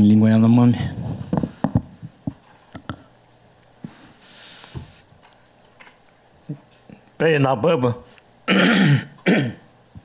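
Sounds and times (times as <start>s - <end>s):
man clearing his throat: 8.5s - 9.7s.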